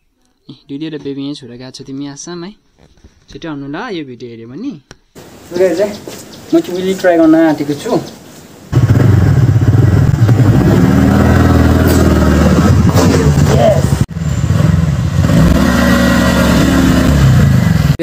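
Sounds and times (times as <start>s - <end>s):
motor scooter engine: 8.7s - 18.0s.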